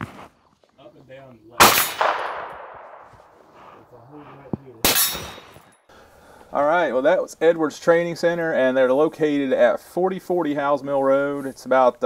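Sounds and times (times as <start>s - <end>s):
gunshots with echo: 1.6s - 3.4s, 4.8s - 5.6s.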